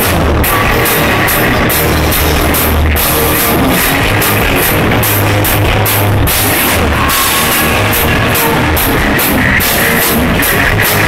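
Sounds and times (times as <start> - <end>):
hard rock band playing: 0.0 - 11.0.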